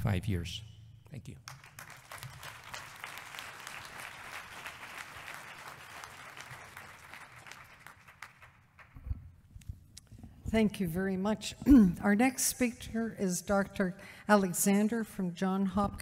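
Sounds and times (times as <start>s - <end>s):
audience applauding: 1.5s - 9.0s.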